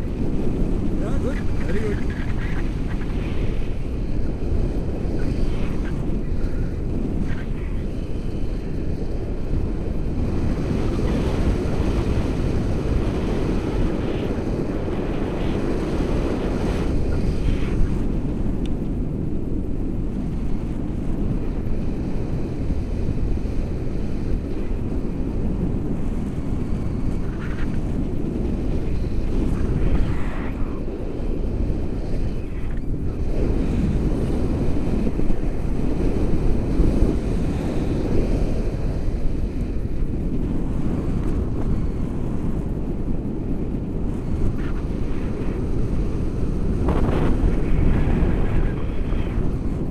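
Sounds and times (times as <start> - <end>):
wind rushing over microphone: 0.0 - 49.9.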